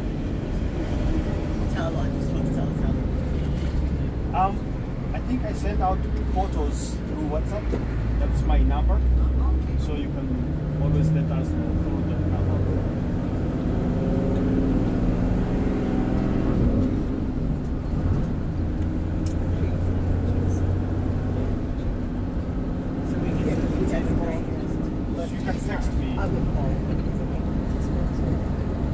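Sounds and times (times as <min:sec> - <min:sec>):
bus engine and road noise: 0:00.0 - 0:28.9.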